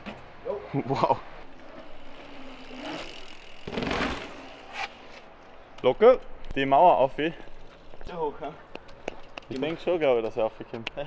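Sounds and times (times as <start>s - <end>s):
bike tyres rolling on paving: 0.0s - 5.8s, 6.5s - 10.7s.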